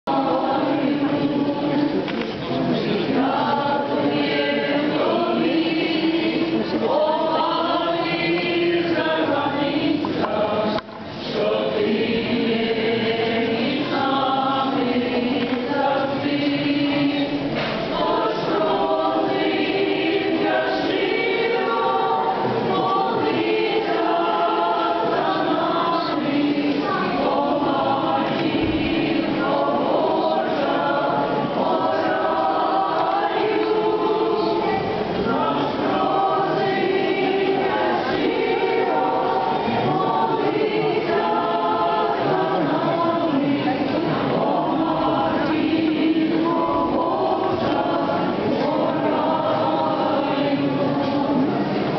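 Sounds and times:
many voices singing a hymn: 0.0 - 51.9.

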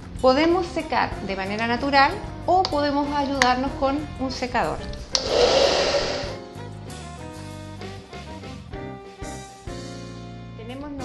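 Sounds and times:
background music: 0.0 - 11.0
hair dryer blowing: 5.1 - 6.4.

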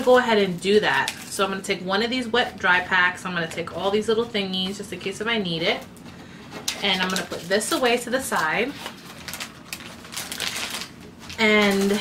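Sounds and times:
packaging clicks and rustles: 6.5 - 12.0.

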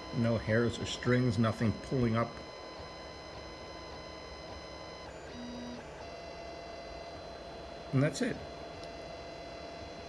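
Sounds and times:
printer stepper motors whining: 0.0 - 10.0.

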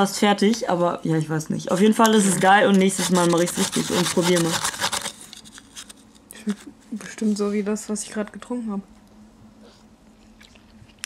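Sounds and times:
plastic spoon scraping slush: 1.7 - 6.0.

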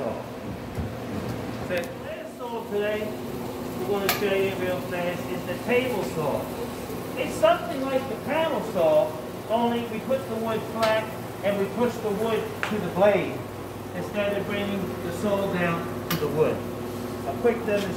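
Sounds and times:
steady low hum: 0.0 - 17.9
man talking: 1.7 - 3.2, 3.8 - 6.6, 7.2 - 17.9.

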